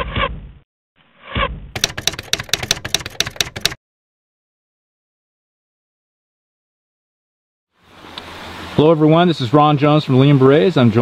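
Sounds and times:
typewriter key strikes: 1.8 - 3.8.

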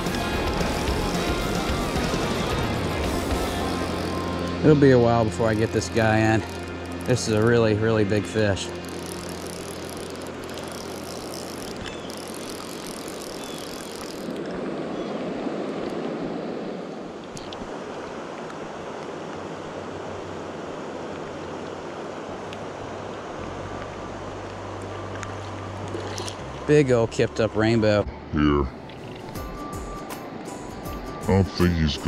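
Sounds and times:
flowing water: 0.0 - 32.0
rain falling on river: 8.8 - 14.8.

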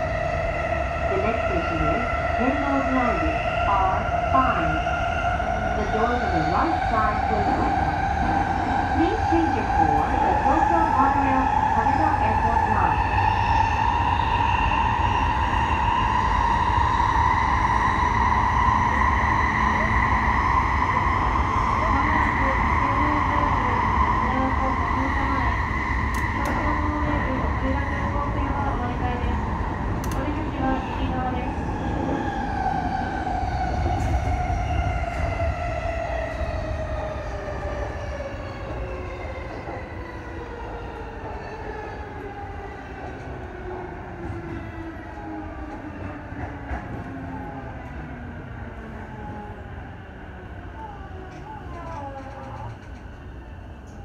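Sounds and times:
faint clicks: 30.0 - 30.3.

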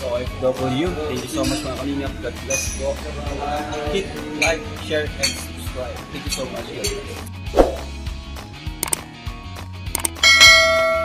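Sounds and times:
background music: 0.0 - 11.0
mouse clicks: 8.8 - 9.0, 9.9 - 10.2.

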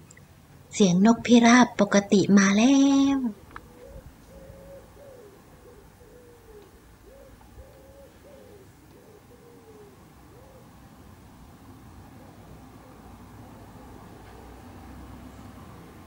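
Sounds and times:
wood pigeon cooing: 3.3 - 11.0, 12.0 - 15.5.

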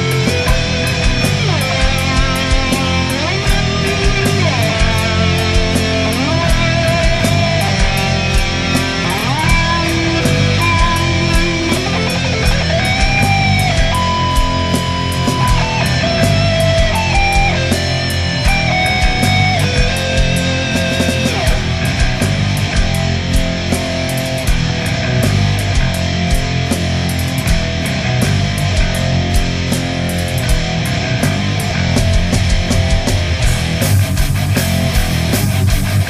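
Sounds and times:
bass: 0.0 - 36.0
drumbeat: 0.0 - 36.0
electric guitar lead: 0.0 - 36.0
instrumental heavy metal: 0.0 - 36.0.

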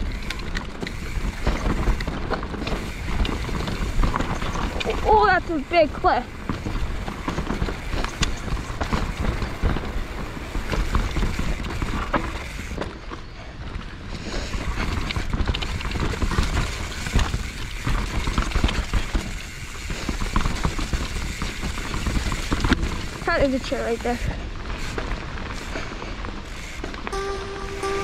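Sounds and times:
bike clattering and rattling: 0.0 - 27.2
bike tyres on dirt and roots: 0.0 - 27.2.

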